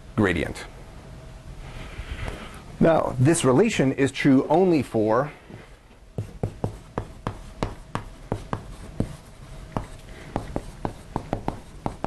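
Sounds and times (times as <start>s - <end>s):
chalk writing on blackboard: 6.2s - 12.0s.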